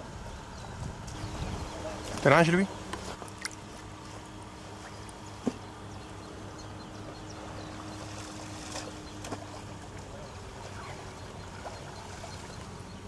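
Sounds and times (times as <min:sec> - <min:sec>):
boat motor humming: 0:00.0 - 0:13.0.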